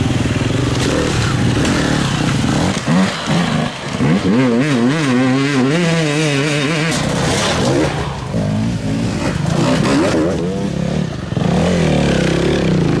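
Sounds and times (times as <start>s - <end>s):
dirt bike engines revving: 0.0s - 13.0s.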